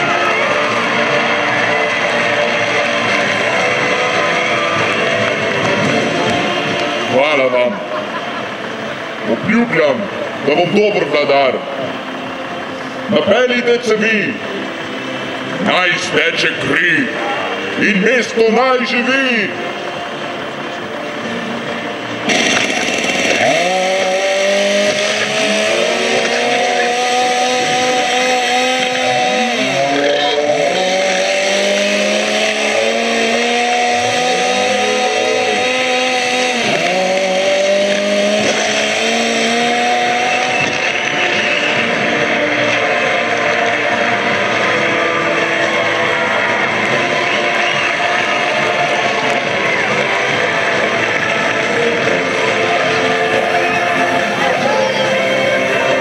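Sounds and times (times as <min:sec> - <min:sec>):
chainsaw engine revving: 0:22.2 - 0:54.3.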